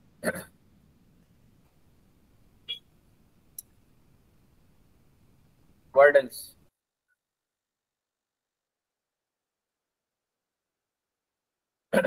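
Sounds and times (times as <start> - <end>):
low call background noise: 0.0 - 6.7.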